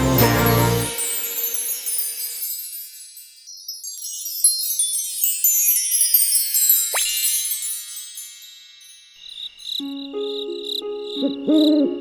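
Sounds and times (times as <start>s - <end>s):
high tinkling chimes: 0.0s - 11.2s.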